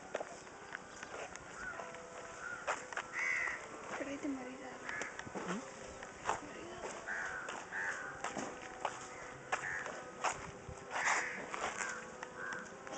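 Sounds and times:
birds calling: 0.7 - 3.8, 4.5 - 8.4, 9.0 - 10.1, 10.9 - 12.8.

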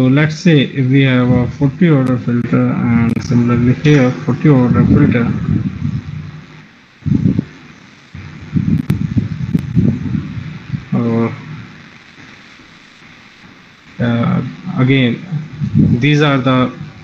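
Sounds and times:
man speaking in low fragments: 0.0 - 6.1, 10.6 - 11.6, 14.0 - 17.0.

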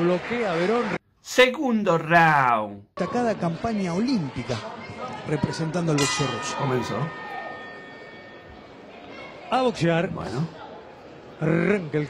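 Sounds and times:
arena background noise: 0.0 - 12.0
faint steady ringing tones: 6.0 - 9.4.

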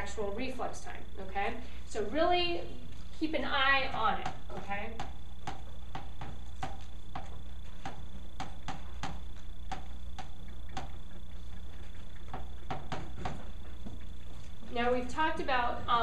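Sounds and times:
steady low hum: 0.0 - 16.0
chalk tapping on chalkboard: 3.9 - 11.0.

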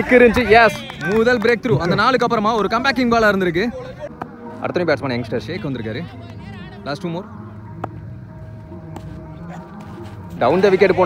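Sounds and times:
outdoor background murmur: 0.0 - 11.0.

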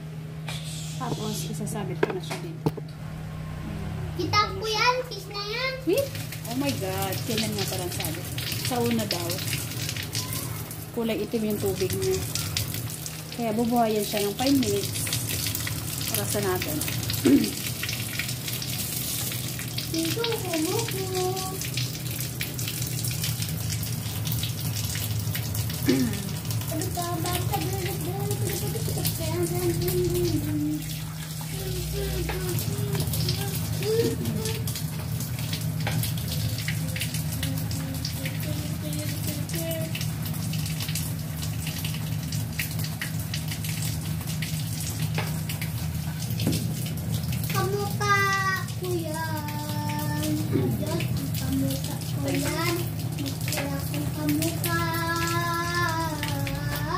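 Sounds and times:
steady low hum: 0.0 - 56.9
kitchen tap running: 1.0 - 2.9, 4.3 - 56.9
water splashing into metal sink: 4.7 - 56.9
water drips: 5.0 - 56.9.

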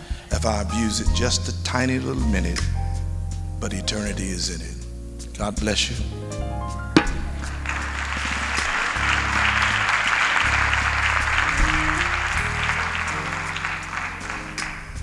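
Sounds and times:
soft music with low chords: 0.0 - 15.0
audience applauding: 7.0 - 15.0.

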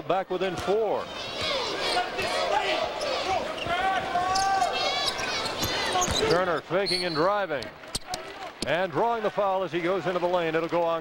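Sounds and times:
sneakers squeaking: 1.4 - 7.3.

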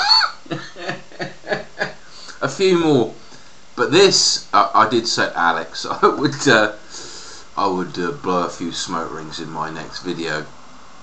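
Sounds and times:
man chuckling: 0.0 - 2.6.

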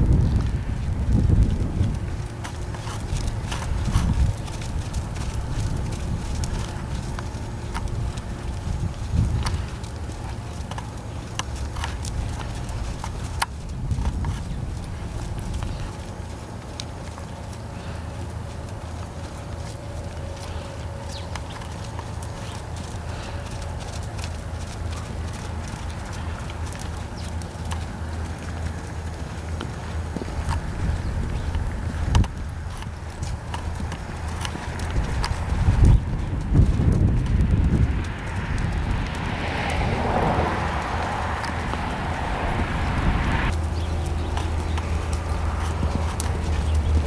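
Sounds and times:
horse hoofbeats on dirt: 0.0 - 47.0
low rumble: 0.0 - 47.0.

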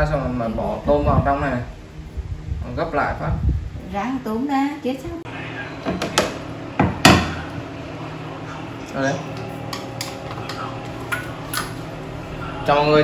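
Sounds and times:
steady hum: 0.0 - 13.0.

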